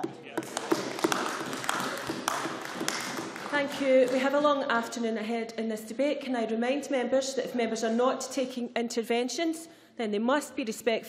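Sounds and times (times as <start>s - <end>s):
applause: 0.4s - 4.3s.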